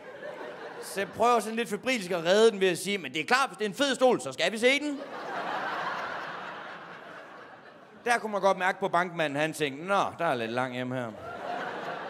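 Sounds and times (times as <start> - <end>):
audience laughing: 0.0 - 2.1, 4.8 - 8.3, 11.1 - 12.0.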